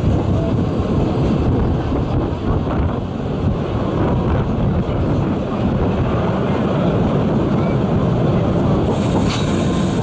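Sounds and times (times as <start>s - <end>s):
steam train car rolling: 0.0s - 10.0s
wind buffeting microphone: 0.0s - 10.0s.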